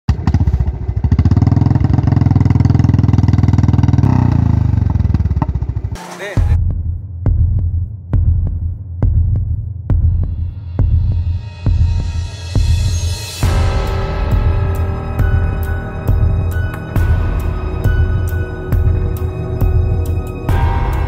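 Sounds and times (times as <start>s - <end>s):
motorcycle engine puttering: 0.1s - 6.4s
music with deep throbbing beat: 4.7s - 21.0s.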